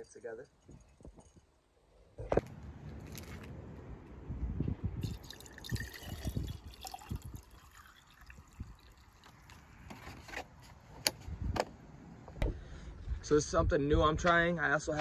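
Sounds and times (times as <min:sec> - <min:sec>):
water trickling into glass jar: 0:05.0 - 0:09.6.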